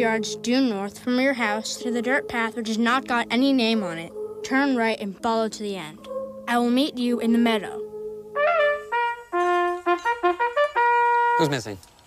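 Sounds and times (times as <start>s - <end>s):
bugle call: 7.6s - 11.8s.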